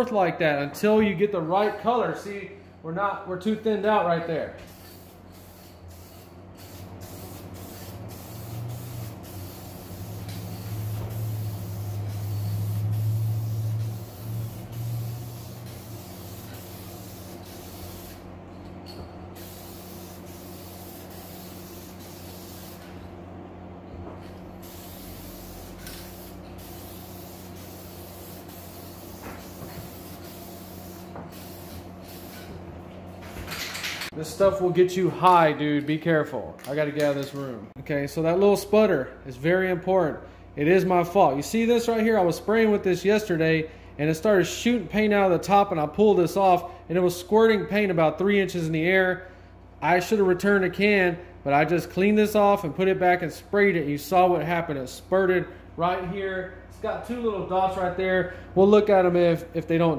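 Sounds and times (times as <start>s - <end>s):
aerosol can spraying: 4.7s - 18.3s, 19.4s - 22.9s, 24.6s - 32.5s.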